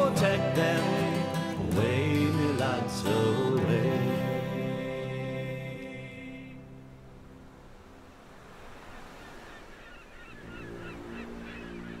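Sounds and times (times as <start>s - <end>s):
waves rushing on shore: 3.0s - 12.0s
birds chirping: 8.2s - 12.0s.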